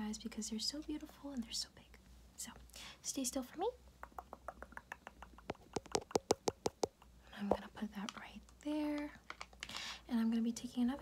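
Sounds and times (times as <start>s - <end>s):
fingertips tapping camera lens: 4.0s - 9.8s.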